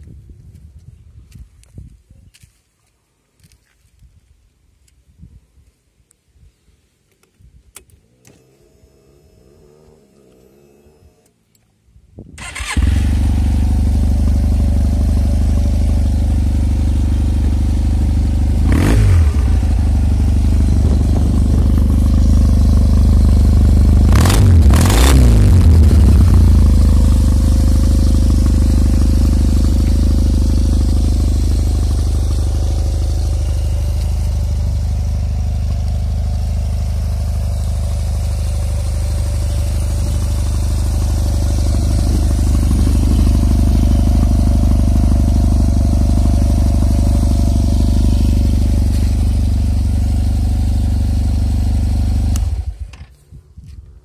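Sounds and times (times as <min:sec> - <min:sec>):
scooter engine idling: 0:12.5 - 0:24.6, 0:25.3 - 0:53.0.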